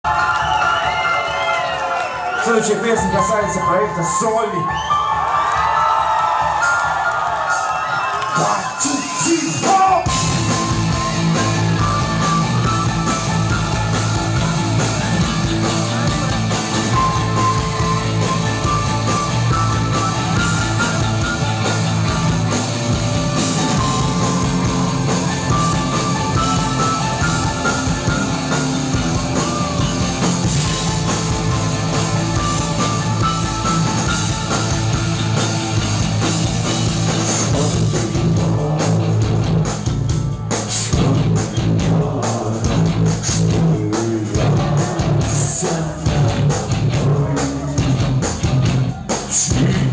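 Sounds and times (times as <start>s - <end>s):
rock band playing live: 6.2s - 49.9s
electric guitar: 10.1s - 40.1s.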